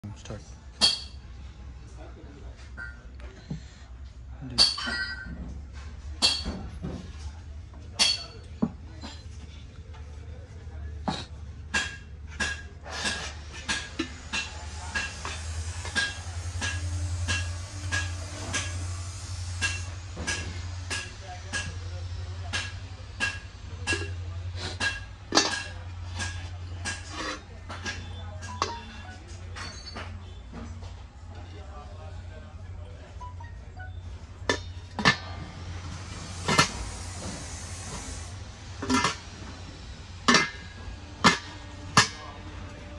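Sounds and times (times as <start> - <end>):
steady low hum: 0.0 - 42.9.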